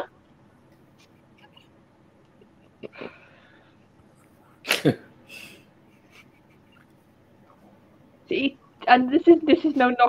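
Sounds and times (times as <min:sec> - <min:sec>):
person sneezing: 0:04.6 - 0:05.6.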